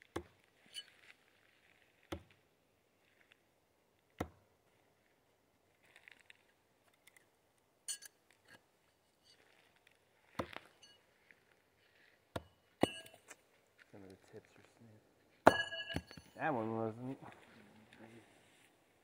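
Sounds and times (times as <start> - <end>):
metal knives hitting tree trunk: 7.9 - 8.2, 12.4 - 13.4, 15.4 - 16.4.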